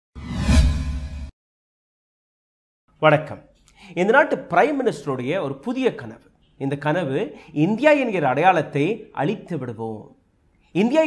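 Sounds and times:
whoosh: 0.2s - 1.3s.

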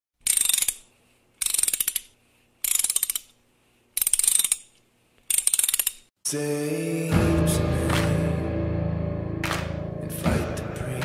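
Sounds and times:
ratcheting mechanical clicks: 0.2s - 3.4s, 4.0s - 6.1s.

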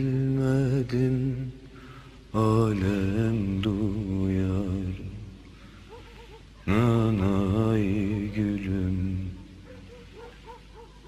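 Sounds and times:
man singing folk tune: 0.0s - 1.7s, 2.3s - 5.4s, 6.6s - 9.8s
low vocal drone: 0.0s - 6.0s, 6.6s - 10.2s.

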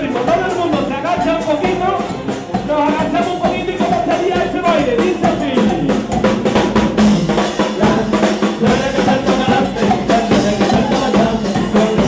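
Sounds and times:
drums beating a driving rhythm: 0.0s - 12.0s.

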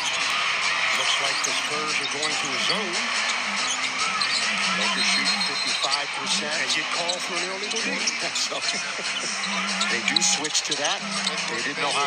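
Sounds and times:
crowd noise: 0.0s - 12.0s
music over arena speakers: 0.0s - 12.0s.

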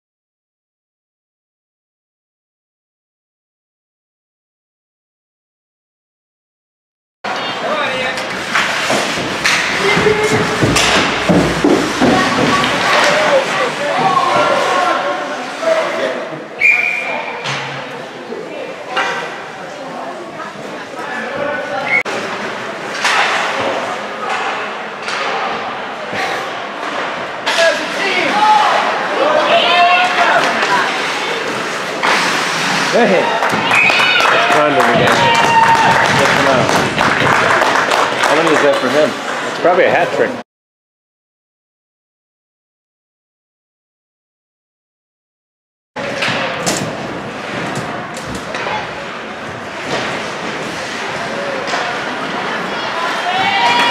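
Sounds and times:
puck and sticks knocking: 8.5s - 13.4s.

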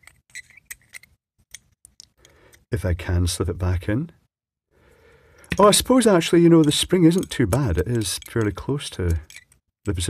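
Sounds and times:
small metal parts clicking: 0.0s - 2.6s, 5.4s - 9.7s.

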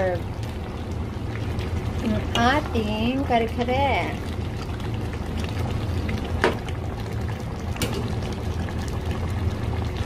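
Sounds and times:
thick sauce bubbling in pan: 0.0s - 10.0s.

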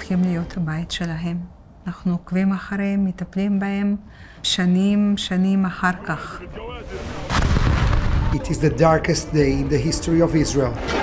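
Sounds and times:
loud explosion with deep rumble: 7.1s - 8.5s.

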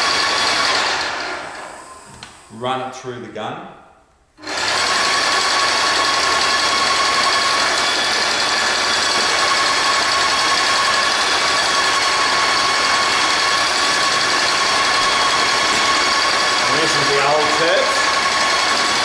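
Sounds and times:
paint sprayer humming and whining: 0.0s - 2.5s, 4.4s - 19.0s.

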